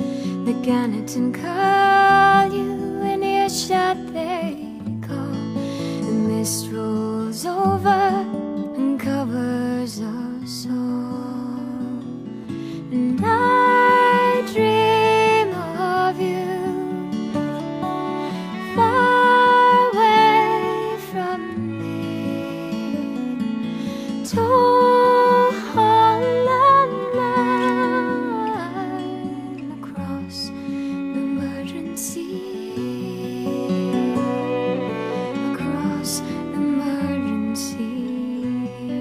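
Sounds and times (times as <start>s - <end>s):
acoustic guitar: 0.0s - 39.0s
gentle folk music: 0.0s - 39.0s.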